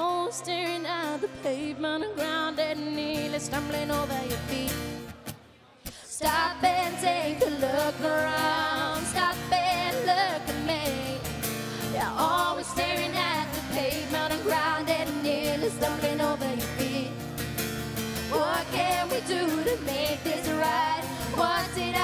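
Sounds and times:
two women singing: 0.0s - 5.0s, 5.9s - 17.3s, 18.2s - 22.0s
acoustic guitar: 0.0s - 22.0s.

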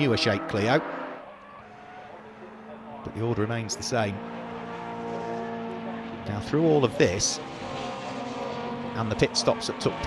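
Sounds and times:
racing cars passing at speed: 0.0s - 10.0s.

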